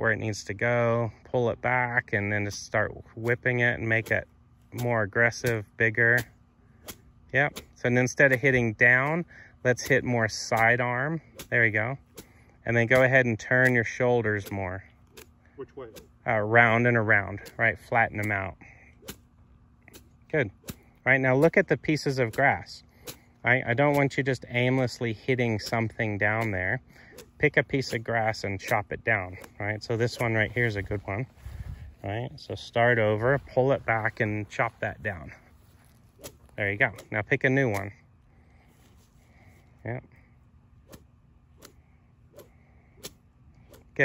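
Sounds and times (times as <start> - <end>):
golf club chopping through grass: 3.9 - 8.6, 9.8 - 16.2, 19.0 - 19.3, 35.3 - 37.9, 40.8 - 44.0
golf club swishing through grass: 33.0 - 37.2.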